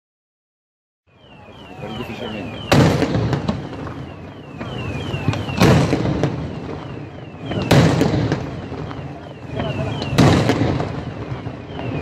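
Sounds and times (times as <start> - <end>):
fireworks shells booming: 1.2 - 12.0
small firework cracks: 2.1 - 12.0.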